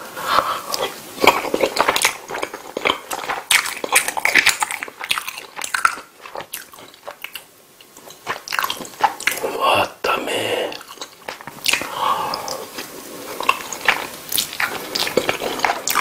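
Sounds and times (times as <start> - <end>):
close-miked chewing: 0.3 - 9.7, 10.7 - 16.0.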